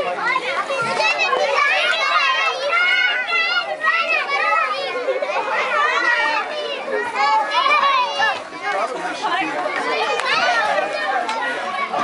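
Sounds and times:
young children talking and calling out: 0.0 - 12.0.

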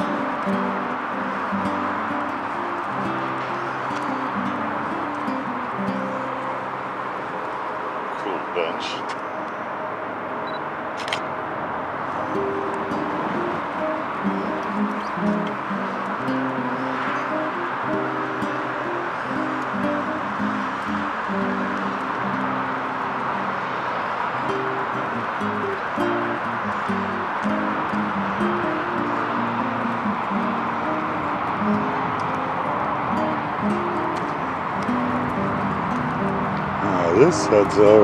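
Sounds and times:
plucked string melody: 0.0 - 7.7, 12.1 - 38.0.

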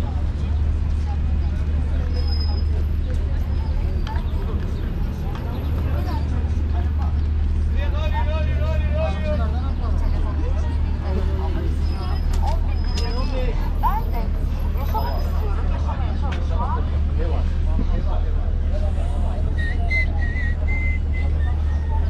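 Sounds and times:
chatter of passersby: 0.0 - 22.0
traffic and idling buses rumble: 0.0 - 22.0.

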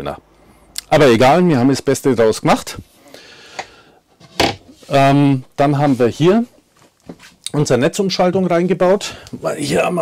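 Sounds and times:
wooden lid closing knock: 4.2 - 4.7.

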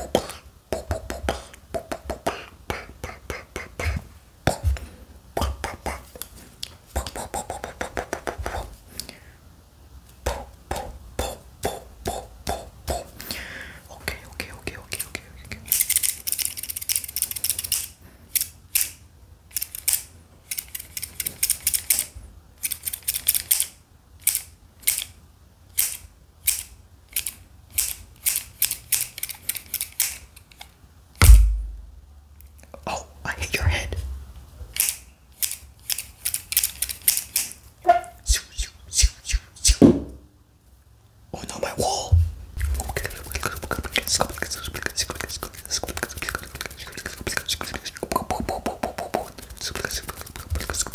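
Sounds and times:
heavy low thump: 31.2 - 32.0, 39.8 - 40.3
scissors snipping and clicking: 34.8 - 37.6.

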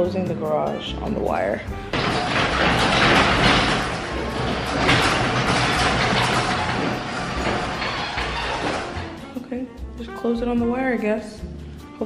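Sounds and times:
garage door opener rumbling: 1.7 - 9.4.

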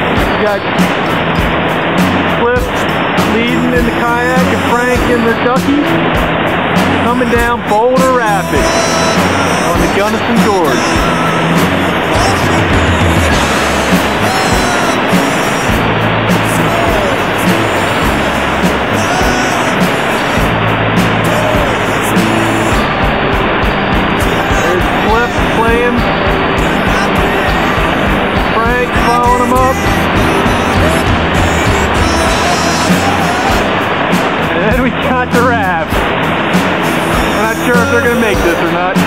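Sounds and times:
music with slow bass line: 0.0 - 39.0
whitewater rapid rushing: 0.0 - 39.0.

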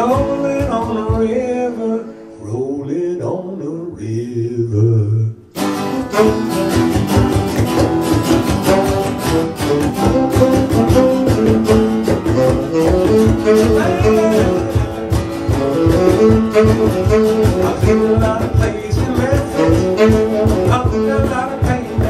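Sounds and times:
man singing: 0.0 - 5.5, 8.8 - 14.9, 15.5 - 22.0
acoustic-electric guitar: 0.0 - 22.0
fuller band accompaniment: 5.6 - 22.0.

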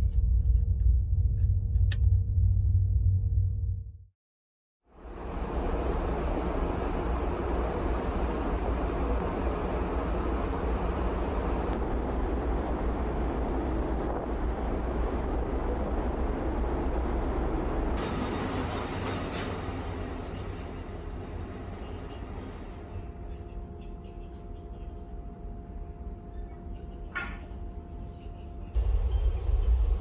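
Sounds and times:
wind: 4.8 - 30.0
ship engine drone: 4.9 - 30.0
steady noise inside ship: 4.9 - 30.0.

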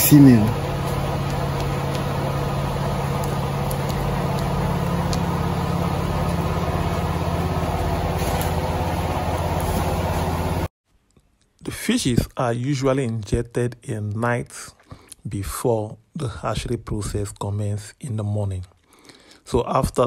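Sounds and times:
small engine humming: 0.0 - 10.7.

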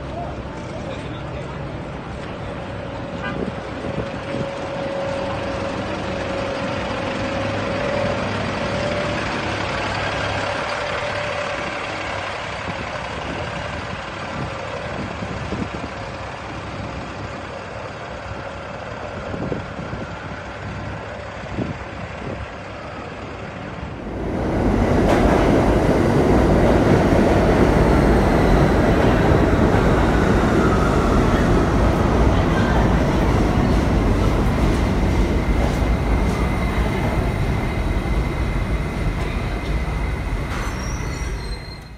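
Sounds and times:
bus engine running: 0.0 - 41.9
street traffic: 0.0 - 41.9
subway train rumbling: 0.0 - 41.9
high wheel whine: 23.8 - 41.9.

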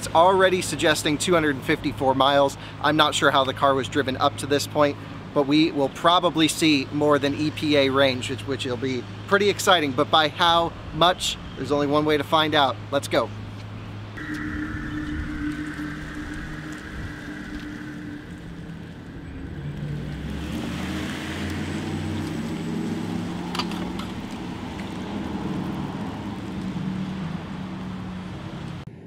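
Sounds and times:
electric car hum: 13.7 - 28.9.

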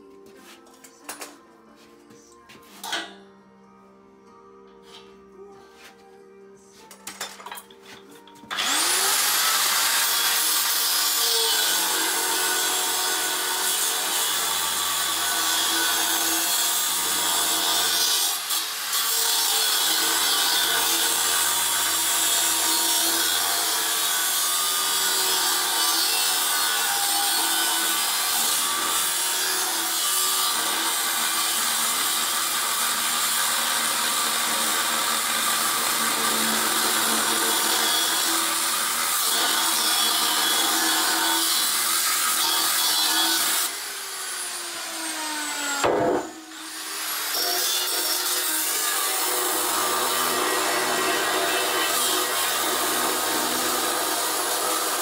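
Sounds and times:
angle grinder cutting steel: 8.4 - 55.0.

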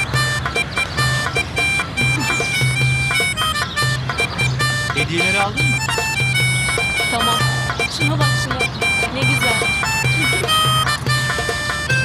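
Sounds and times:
harmonica tune: 0.0 - 12.0.

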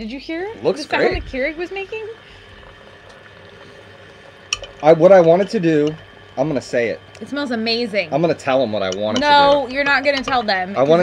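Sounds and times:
coffee maker hissing and gurgling: 0.0 - 11.0
person speaking: 0.5 - 1.6, 8.9 - 10.1.

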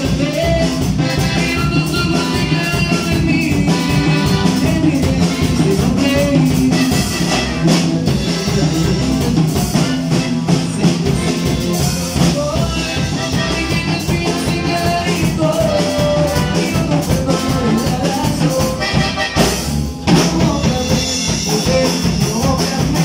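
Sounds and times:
button accordion: 0.0 - 20.8
bass: 0.0 - 23.0
drum kit: 0.0 - 23.0
guitar: 0.0 - 23.0.

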